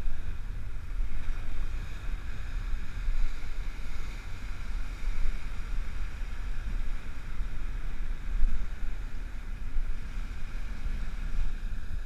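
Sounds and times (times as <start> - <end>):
waves breaking on beach: 0.0 - 12.0
wind buffeting microphone: 0.0 - 12.0.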